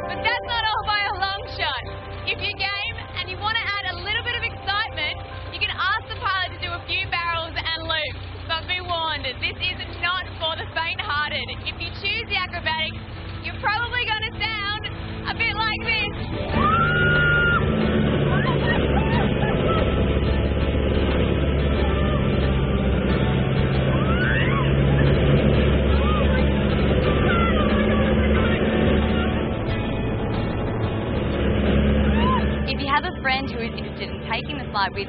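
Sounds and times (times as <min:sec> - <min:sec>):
biplane engine: 0:00.0 - 0:35.0
rushing wind: 0:14.4 - 0:35.0
woman screaming: 0:16.5 - 0:17.7, 0:18.3 - 0:20.0, 0:24.0 - 0:24.8, 0:32.1 - 0:32.6.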